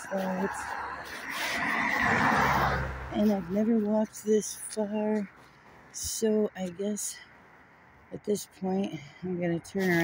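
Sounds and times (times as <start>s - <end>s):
car driving past: 0.5s - 3.2s.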